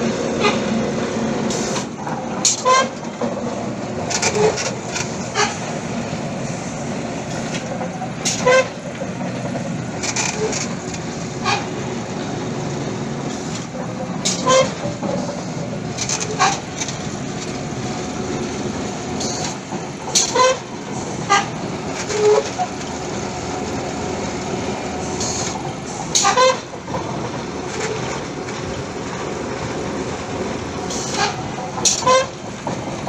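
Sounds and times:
boring rig machinery noise: 0.0s - 33.0s.

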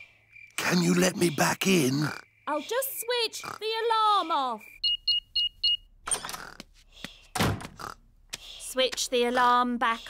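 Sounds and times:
alarm keypad beeping: 4.8s - 5.9s
front door opening: 6.0s - 6.5s, 7.3s - 7.8s.

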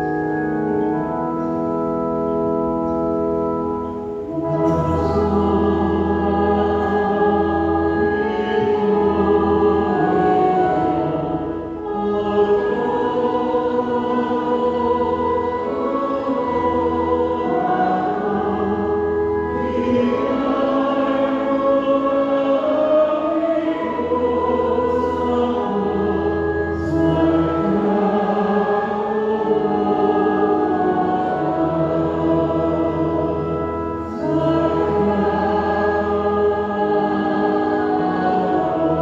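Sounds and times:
church organ playing hymn: 0.0s - 39.0s.

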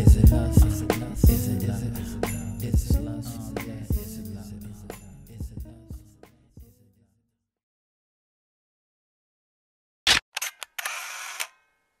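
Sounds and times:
camera shutter clicks: 10.1s - 11.6s.

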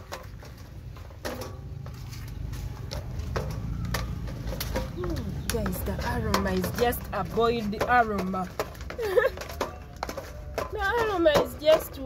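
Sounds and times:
wooden pestle pounding in plastic bowl: 2.9s - 12.0s.

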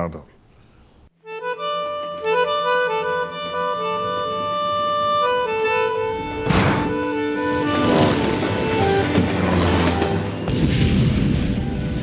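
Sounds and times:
film score with accordion: 1.2s - 10.5s
loud rush of noise: 7.6s - 12.0s.

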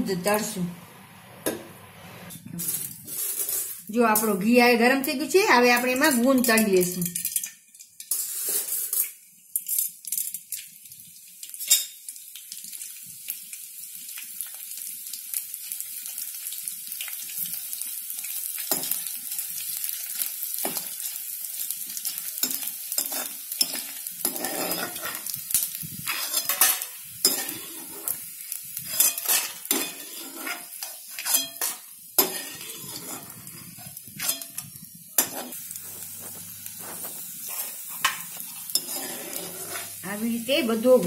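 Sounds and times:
gum sizzling in hot oil: 0.1s - 41.0s
ladle scraping a pan: 1.4s - 3.8s, 23.0s - 25.4s, 26.0s - 28.2s, 28.8s - 40.0s.

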